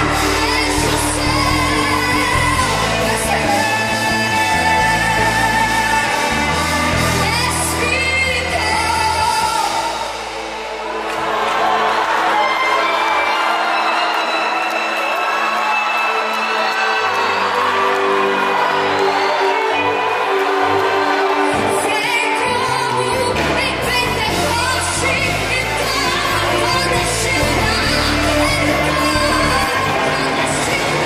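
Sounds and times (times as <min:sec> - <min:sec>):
singing: 0:00.0 - 0:10.1, 0:16.2 - 0:31.0
bass: 0:00.0 - 0:12.9, 0:17.5 - 0:31.0
gospel band playing: 0:00.0 - 0:31.0.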